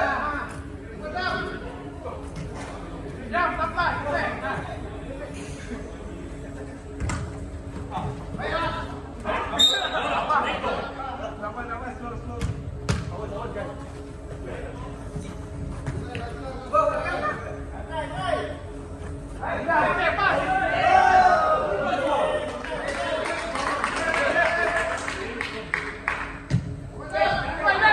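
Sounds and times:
players calling in echoing hall: 0:00.0 - 0:27.9
ball kick thuds: 0:12.4 - 0:13.2.

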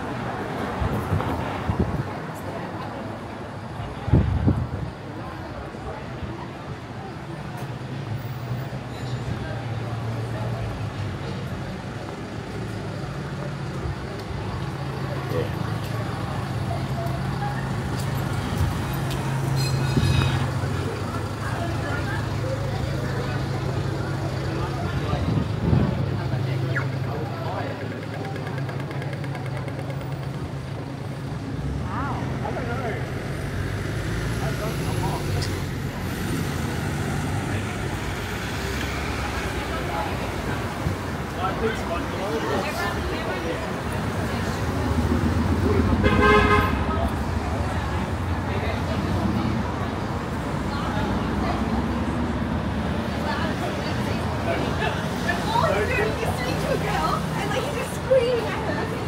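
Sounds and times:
people talking: 0:00.0 - 0:08.4, 0:09.0 - 0:59.0
traffic engines running: 0:00.0 - 0:59.0.

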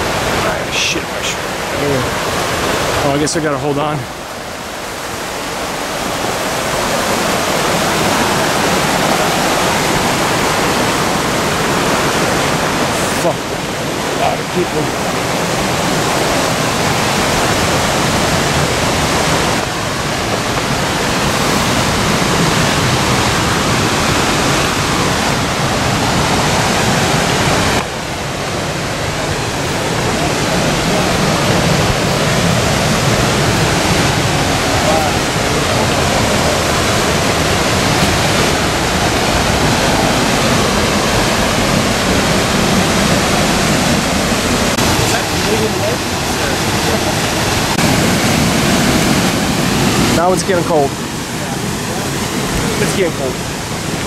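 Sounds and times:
rush of falling water: 0:00.0 - 0:54.0.

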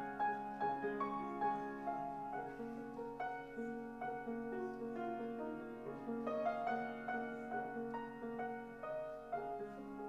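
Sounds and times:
upright piano playing slowly: 0:00.0 - 0:10.0.

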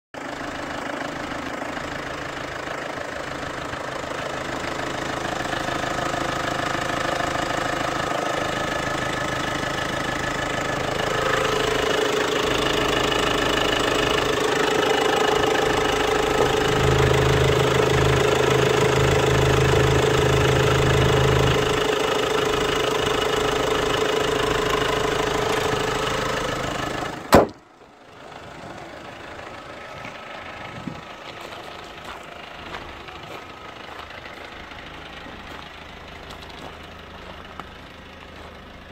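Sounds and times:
diesel engine idling: 0:00.2 - 0:38.9.

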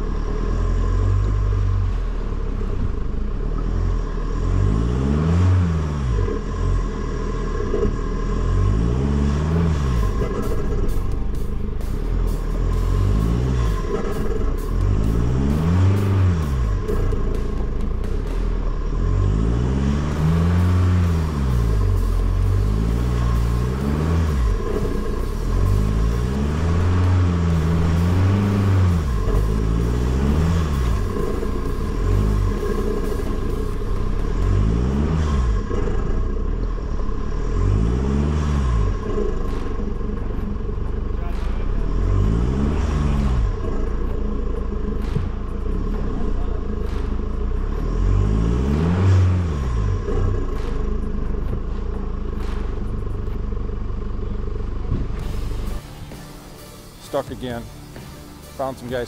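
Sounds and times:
steady low rumble: 0:00.0 - 0:59.0
truck engine revving: 0:00.0 - 0:59.0.

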